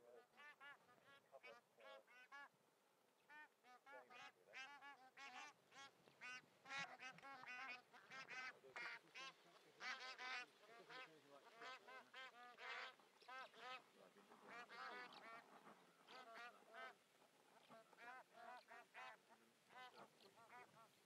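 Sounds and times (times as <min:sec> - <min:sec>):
geese honking: 0:03.3 - 0:21.0.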